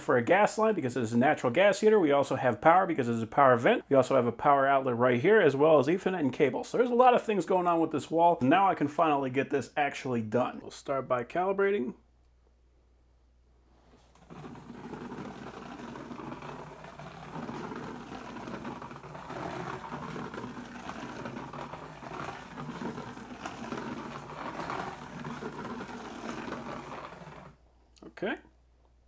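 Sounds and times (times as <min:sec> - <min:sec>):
plastic scanner scraping drywall: 0:14.0 - 0:27.6.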